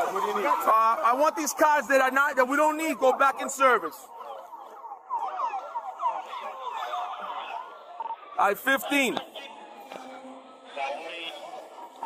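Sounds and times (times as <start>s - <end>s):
police sirens yelping: 0.0s - 12.0s.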